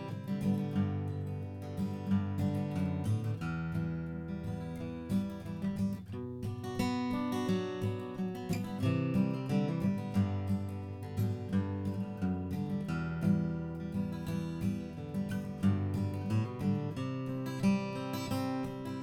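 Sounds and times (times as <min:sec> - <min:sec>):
acoustic guitar playing: 0:00.0 - 0:19.0.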